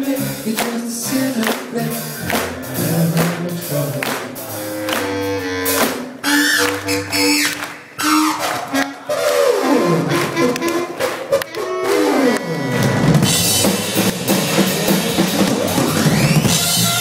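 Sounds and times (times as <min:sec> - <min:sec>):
drums hitting: 0:12.8 - 0:17.0.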